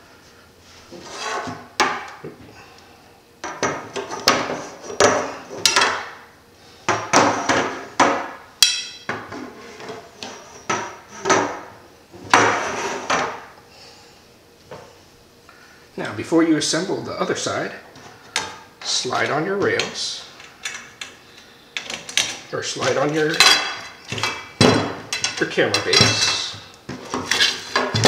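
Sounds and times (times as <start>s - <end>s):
metal tubes scraping on wood: 1.0s - 1.5s.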